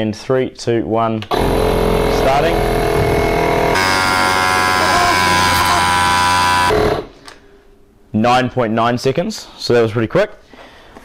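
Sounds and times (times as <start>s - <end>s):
tyre inflator running: 1.3s - 7.2s.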